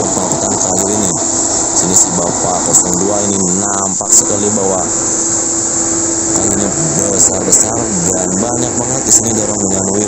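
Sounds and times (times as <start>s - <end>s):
truck diesel engine under load: 0.0s - 10.0s.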